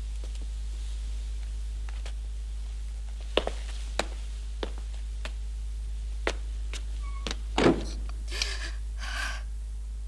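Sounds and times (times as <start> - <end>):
footsteps on a hard floor: 3.1 - 5.4
door shutting with a thud: 7.6 - 8.0.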